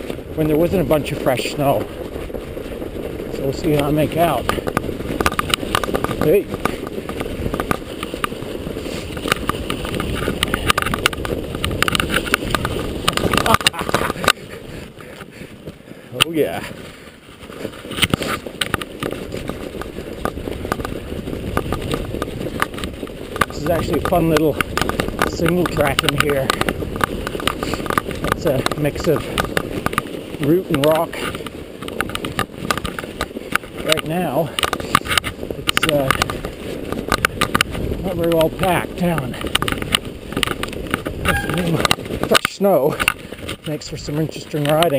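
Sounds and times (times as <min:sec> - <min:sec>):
bike rattling over roots and rock: 0:00.0 - 0:44.9
tyres rolling through snow: 0:00.0 - 0:44.9
wind on microphone: 0:00.0 - 0:44.9.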